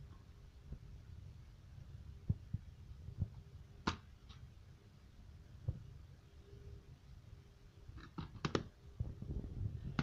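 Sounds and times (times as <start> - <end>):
soft low thumps: 2.2 - 3.4.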